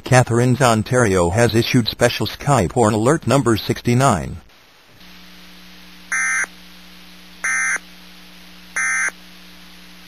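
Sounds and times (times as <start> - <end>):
radio static hum and hiss: 0.0 - 10.0.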